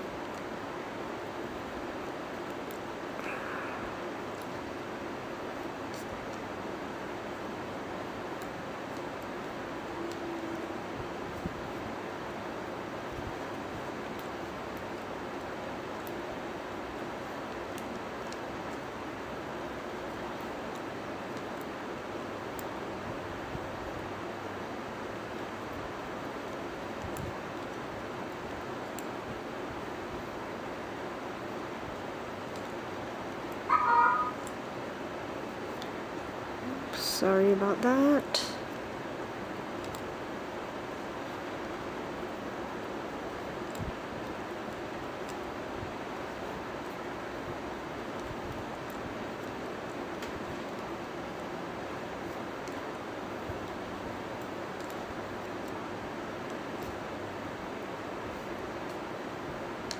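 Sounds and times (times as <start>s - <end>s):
background hiss: 0.0s - 59.9s
short high-pitched cry: 33.7s - 34.4s
faint light clicks: 39.8s - 40.1s.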